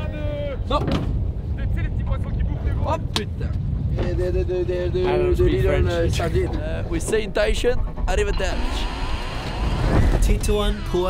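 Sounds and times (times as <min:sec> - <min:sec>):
wind on open water: 0:00.1 - 0:06.9
boat engine rumble: 0:00.6 - 0:11.0
voice: 0:01.6 - 0:08.9, 0:10.2 - 0:11.0.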